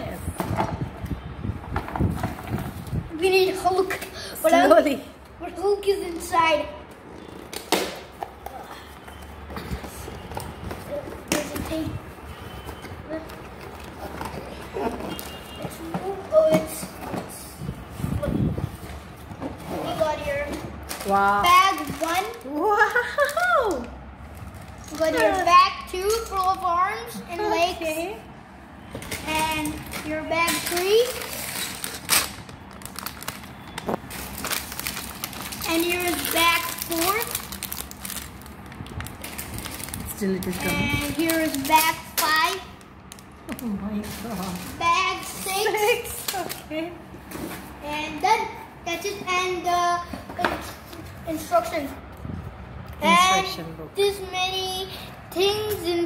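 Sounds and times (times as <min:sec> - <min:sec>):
plastic bags crinkling and rattling: 0:08.8 - 0:16.5, 0:19.8 - 0:26.8, 0:29.0 - 0:47.7.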